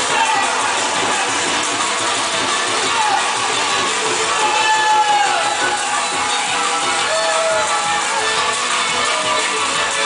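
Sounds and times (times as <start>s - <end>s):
fiddle playing: 1.6s - 10.0s.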